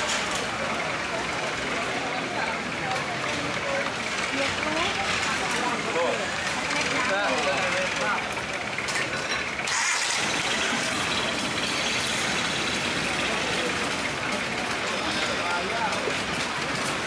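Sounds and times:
chatter of voices: 0:00.0 - 0:17.0
steady mechanical hum: 0:00.0 - 0:17.0.

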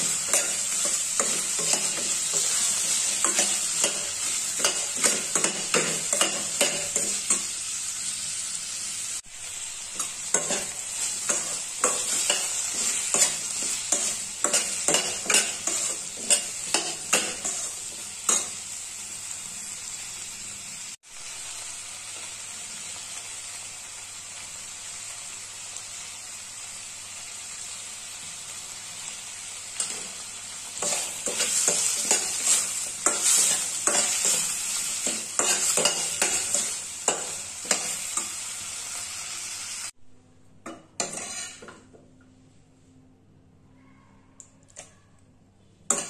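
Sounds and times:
vegetables sizzling in oil: 0:00.0 - 0:40.0, 0:41.0 - 0:41.8.

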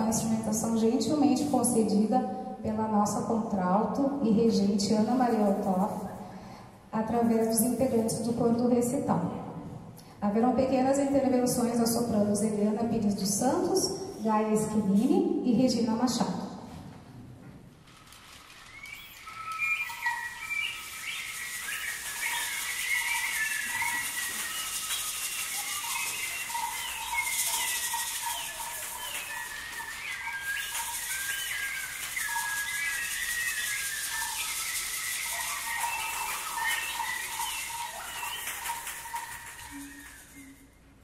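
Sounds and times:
rainstick hiss: 0:18.0 - 0:40.8
bird-call whistles chirping: 0:18.5 - 0:41.0.

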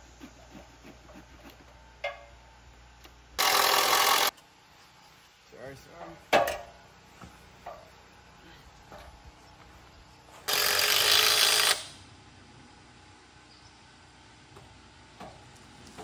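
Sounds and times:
power drill driving screw into wood: 0:03.4 - 0:04.3, 0:10.5 - 0:12.0.

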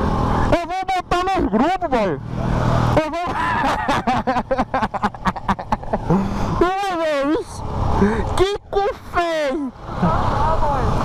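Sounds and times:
motorcycle running: 0:00.0 - 0:11.0
drawn-out vocal cry: 0:02.6 - 0:03.9
man laughing: 0:03.0 - 0:06.6.

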